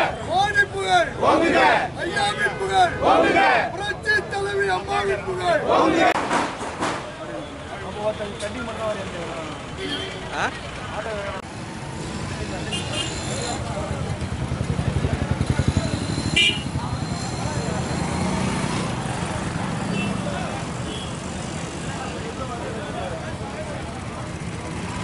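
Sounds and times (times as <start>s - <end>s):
crowd of voices: 0.0s - 25.0s
motorcycle and bus engines: 0.0s - 25.0s.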